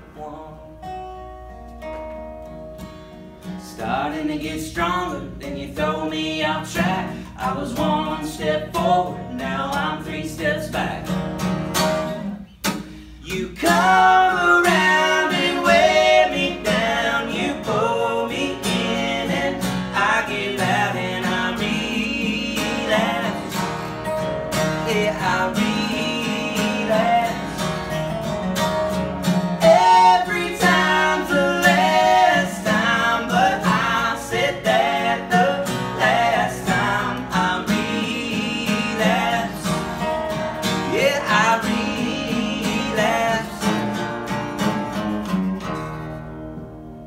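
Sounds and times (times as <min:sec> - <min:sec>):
acoustic guitars strummed: 0:00.0 - 0:47.0
men singing: 0:03.7 - 0:11.2, 0:13.2 - 0:28.2, 0:29.5 - 0:44.3.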